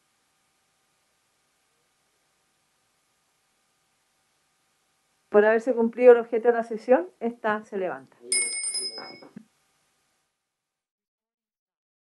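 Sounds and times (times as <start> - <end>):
small bell ringing: 8.3 - 9.4.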